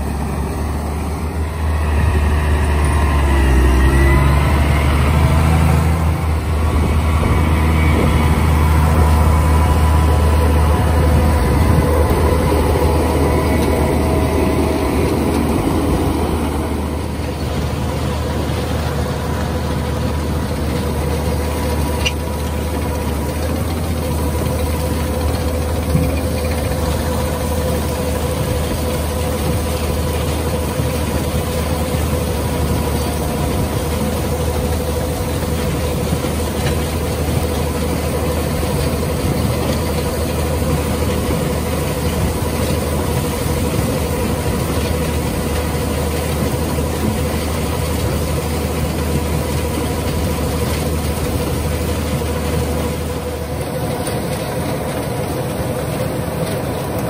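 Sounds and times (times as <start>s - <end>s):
conveyor webs running: 0.0s - 57.0s
harvester engine drone: 0.0s - 57.0s
steady whining tone: 0.0s - 57.0s.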